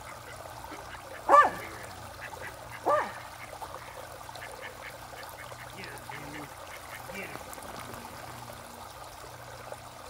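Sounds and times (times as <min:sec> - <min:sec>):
raindrops pattering on pond: 0:00.0 - 0:10.0.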